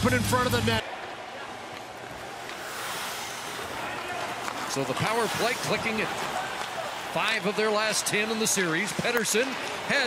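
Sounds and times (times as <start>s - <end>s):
ice rink ambience hiss: 2.0s - 7.1s.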